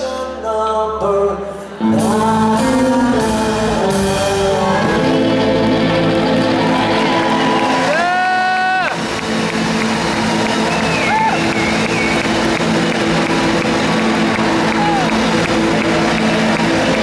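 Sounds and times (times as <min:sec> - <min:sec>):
electric guitars: 0:01.7 - 0:17.0
drum kit: 0:01.9 - 0:17.0.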